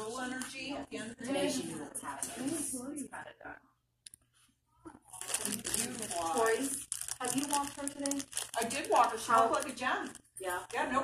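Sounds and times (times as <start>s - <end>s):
person speaking: 4.9s - 11.0s
fabric rustling and crinkling: 5.1s - 11.0s.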